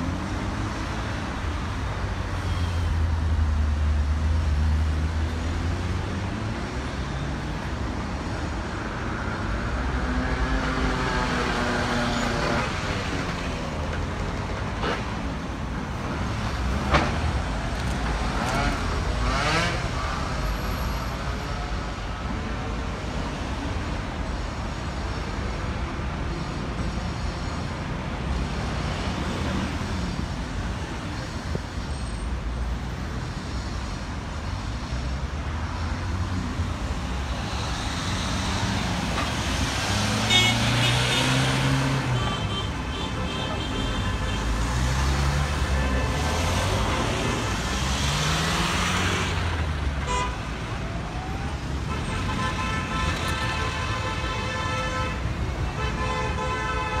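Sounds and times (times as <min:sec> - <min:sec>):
cars driving past: 0:08.8 - 0:21.4, 0:32.8 - 0:53.7.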